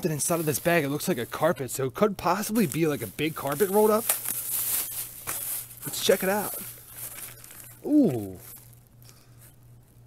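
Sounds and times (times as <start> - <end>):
plastic bag rustling and crinkling: 0.0 - 10.0.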